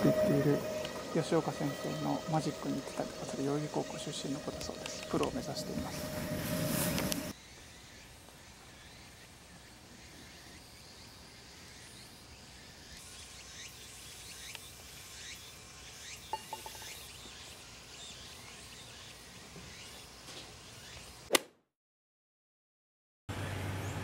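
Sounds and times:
putter striking golf ball: 16.4 - 16.9.

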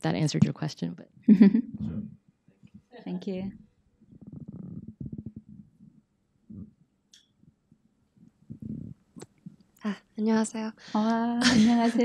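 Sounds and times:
muffled low voice murmur: 1.8 - 2.1.

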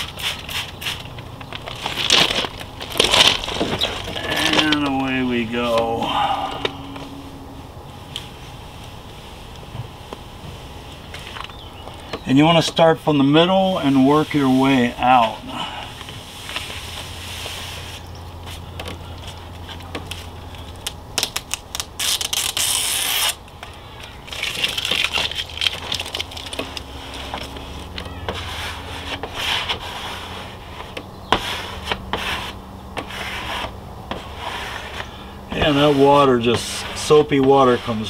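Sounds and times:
squeegee scraping wet vinyl: 0.0 - 5.8, 21.2 - 23.4, 24.3 - 38.0
tape crackling and clicks: 0.0 - 5.9, 18.2 - 28.5, 30.7 - 32.2.

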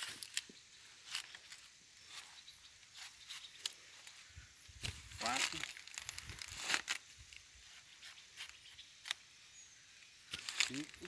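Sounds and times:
banana leaves rustling: 0.0 - 9.3, 10.3 - 11.0.

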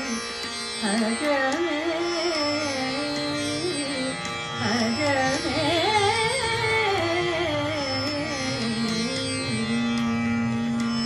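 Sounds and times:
tanpura drone: 0.0 - 11.0
woman singing: 0.8 - 10.2.

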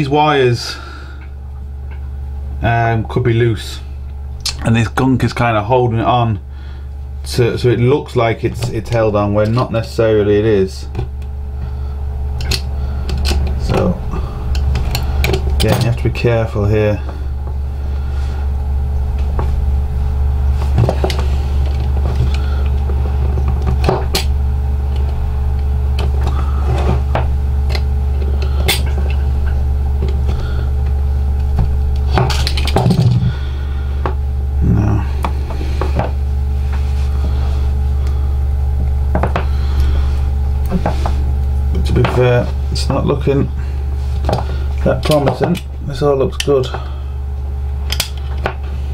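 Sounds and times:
steady low hum: 0.0 - 48.9.

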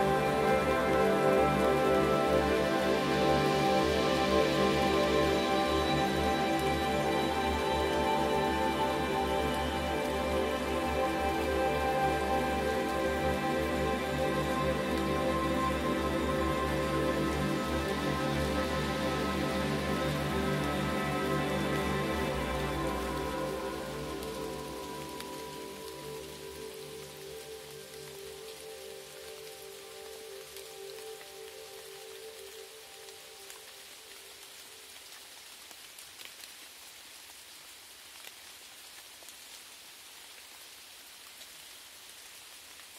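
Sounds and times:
ambient synthesizer pads: 0.0 - 34.2
falling rain: 0.0 - 42.9.

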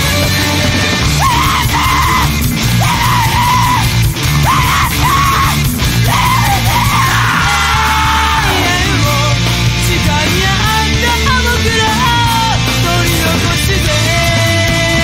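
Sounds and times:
distorted electric guitars: 0.0 - 15.0
heavy bass: 0.0 - 15.0
screamed vocals: 1.1 - 9.2.

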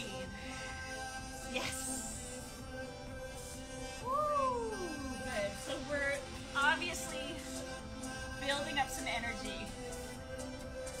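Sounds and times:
music with held tones and voices: 0.0 - 11.0
long rising wail: 4.0 - 5.4.

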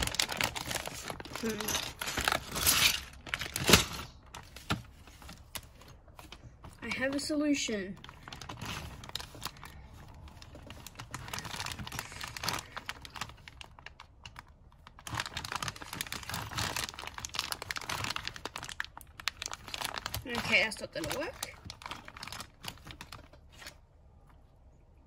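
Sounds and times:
plastic bag crinkling: 0.0 - 23.8.

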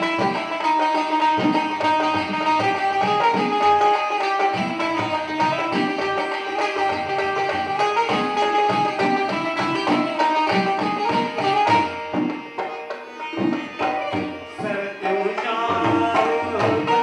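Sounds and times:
hand drums rhythm: 0.0 - 17.0
plucked banjo-zither melody: 0.0 - 17.0.

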